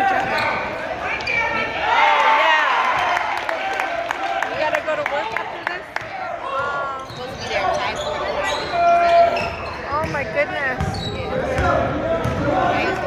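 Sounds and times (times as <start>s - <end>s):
crowd voices and shouts: 0.0s - 13.0s.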